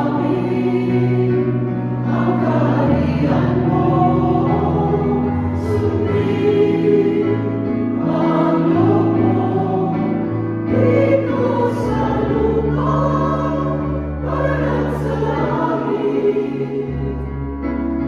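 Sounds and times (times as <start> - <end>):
choir singing a hymn: 0.0 - 18.0
keyboard sustained notes: 0.0 - 18.0.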